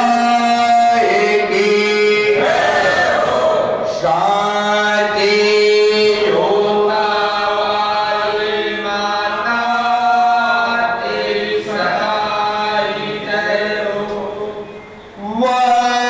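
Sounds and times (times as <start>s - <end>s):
men chanting a hymn in unison: 0.0s - 16.0s.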